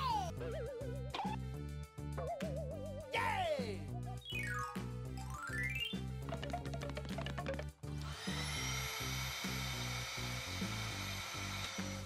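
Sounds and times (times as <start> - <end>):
background music with bass line: 0.0 - 8.3
vacuum cleaner motor whining: 8.0 - 12.0.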